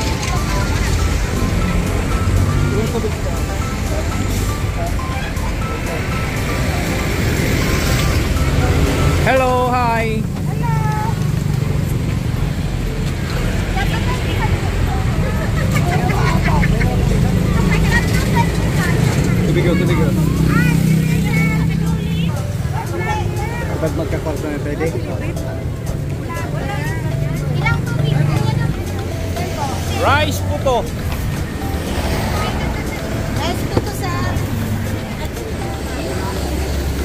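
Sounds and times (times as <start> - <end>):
road traffic rumble: 0.0 - 37.0
voices talking: 0.0 - 37.0.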